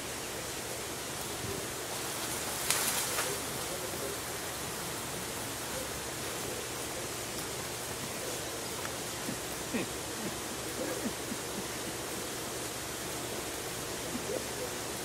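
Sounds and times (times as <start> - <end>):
outdoor background hiss: 0.0 - 15.0
sharp crackle: 1.9 - 4.4.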